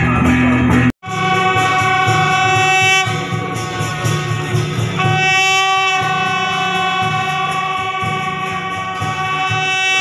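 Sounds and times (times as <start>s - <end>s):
low pulsing bass beat: 0.0s - 10.0s
brass band sustained chord: 1.0s - 10.0s.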